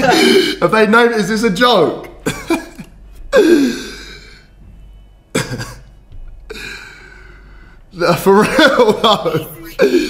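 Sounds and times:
man laughing under his breath: 0:00.0 - 0:00.6
cough-like burst: 0:05.3 - 0:05.9.

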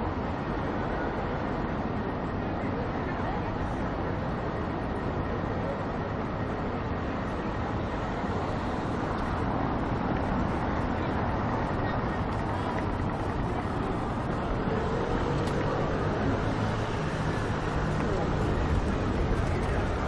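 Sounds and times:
traffic noise: 0:00.0 - 0:20.0.

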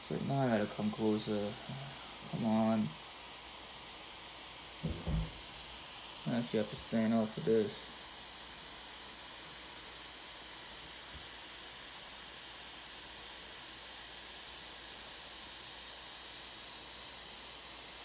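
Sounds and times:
high whine: 0:00.0 - 0:03.0.

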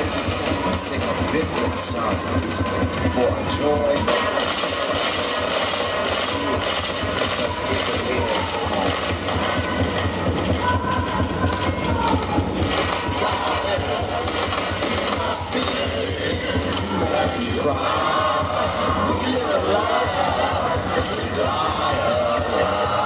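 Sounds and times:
distorted electronic noise music: 0:00.0 - 0:23.0
low throb: 0:00.0 - 0:23.0.

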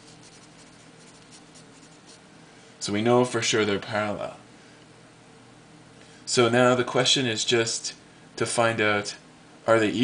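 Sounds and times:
pencil scratching on paper: 0:00.0 - 0:02.2.

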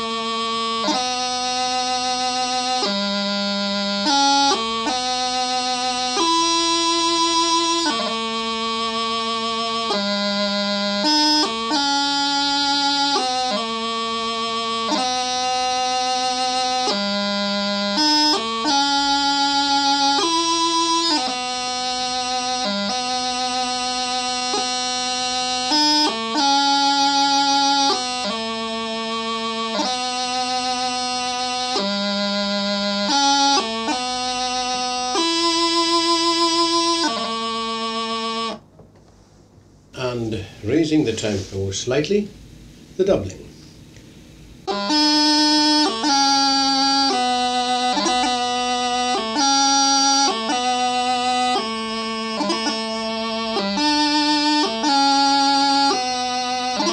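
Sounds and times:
practice chanter melody: 0:00.0 - 0:38.8, 0:39.7 - 0:56.9.

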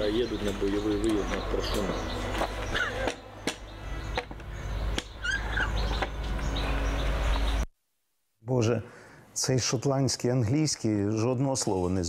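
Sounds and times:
birds chirping: 0:00.0 - 0:07.7.

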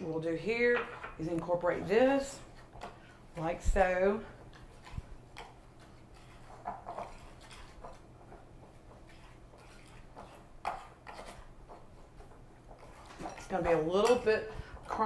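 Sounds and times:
fingers rustling in flour: 0:03.7 - 0:14.0.

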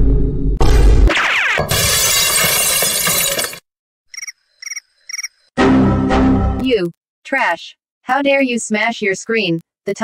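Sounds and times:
glass shattering: 0:01.1 - 0:03.6.

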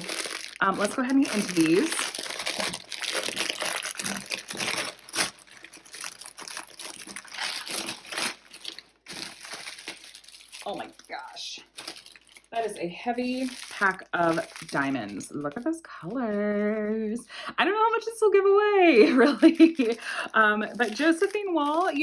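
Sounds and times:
plastic bag crinkling: 0:00.0 - 0:17.3, 0:19.0 - 0:22.0.

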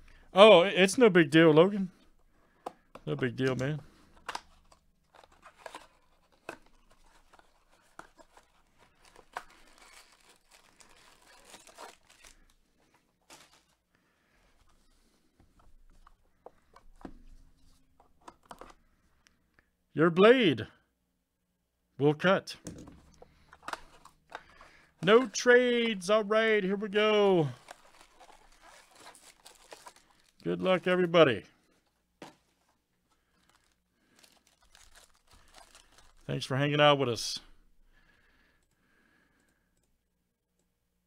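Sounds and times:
cardboard rustling: 0:03.3 - 0:13.9, 0:26.8 - 0:31.1, 0:32.2 - 0:36.3
foil wrappers crinkling: 0:03.9 - 0:13.9, 0:23.3 - 0:31.2, 0:33.1 - 0:36.5.

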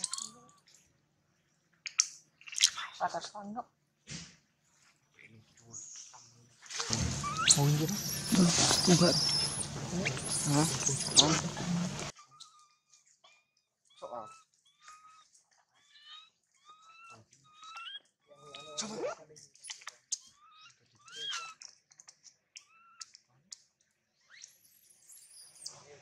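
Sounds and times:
infant monkey crying: 0:07.0 - 0:12.6.

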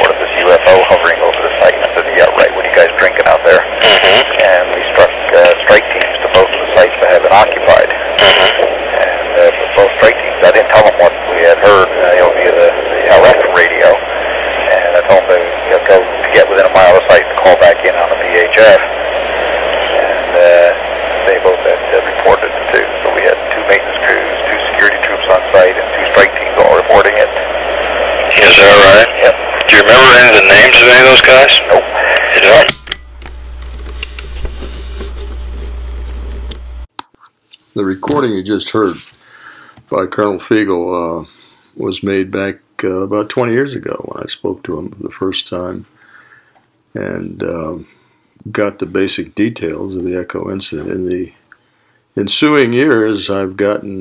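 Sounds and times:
man talking on phone call: 0:00.0 - 0:32.8, 0:37.8 - 0:46.0, 0:46.9 - 0:51.4, 0:52.2 - 0:54.0
low hum and hiss: 0:00.0 - 0:54.0.

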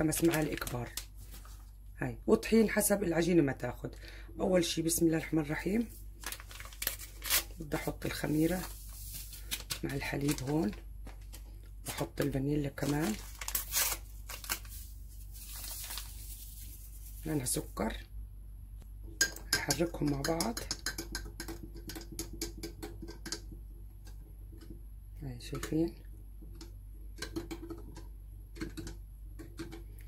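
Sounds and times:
paper rustling: 0:00.0 - 0:01.8, 0:05.8 - 0:17.3
paper sachet tearing: 0:06.2 - 0:12.1, 0:12.7 - 0:17.2.

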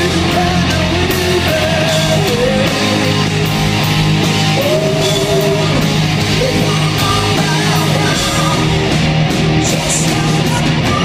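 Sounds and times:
male lead vocal singing: 0:00.0 - 0:03.4, 0:04.5 - 0:08.8, 0:09.6 - 0:11.0
drums: 0:00.0 - 0:11.0
electric guitar: 0:00.0 - 0:11.0.

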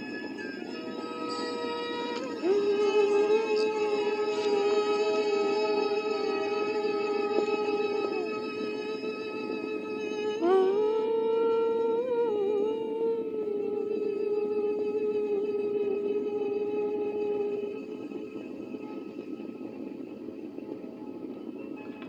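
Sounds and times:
long held musical note: 0:00.0 - 0:20.0
low steady hiss: 0:00.0 - 0:22.0.

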